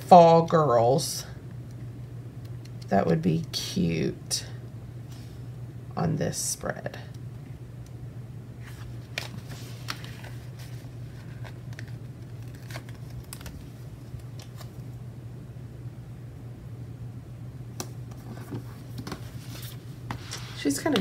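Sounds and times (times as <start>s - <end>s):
steady low hum: 0.0s - 21.0s
paper pages rustling: 8.6s - 14.9s, 18.1s - 21.0s.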